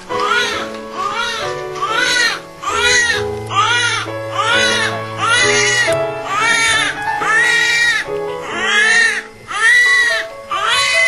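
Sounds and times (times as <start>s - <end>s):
background music: 0.0s - 11.0s
newborn baby crying: 0.2s - 11.0s.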